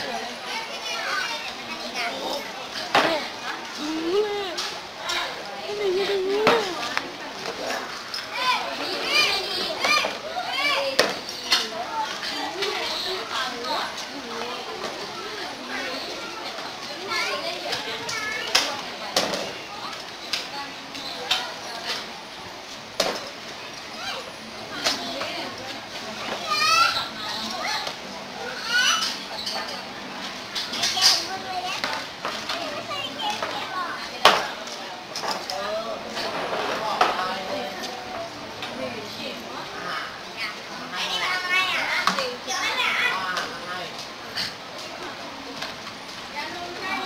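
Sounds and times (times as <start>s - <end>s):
children chattering: 0.0s - 47.0s
people talking: 0.0s - 47.0s
high-pitched child-like voices: 3.1s - 6.9s.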